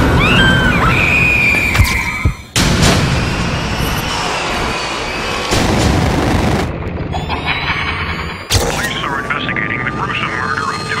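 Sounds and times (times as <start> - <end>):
dark rumbling drone: 2.5 - 11.0
rising high whine: 3.0 - 6.7
booming hits: 5.5 - 7.1.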